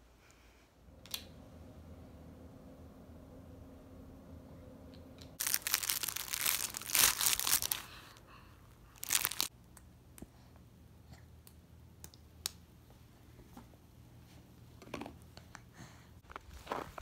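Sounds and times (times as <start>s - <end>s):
soft toy crinkling and rustling: 5.4s - 8.2s, 8.9s - 9.5s.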